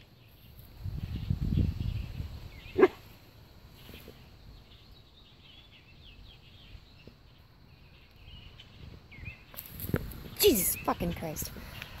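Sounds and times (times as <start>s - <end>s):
faint songbirds chirping: 0.0s - 12.0s.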